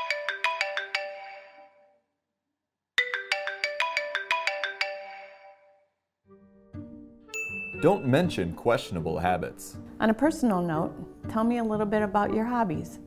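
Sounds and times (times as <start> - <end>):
mobile phone ringtone: 0.0 - 1.9, 3.0 - 5.8, 7.4 - 8.3.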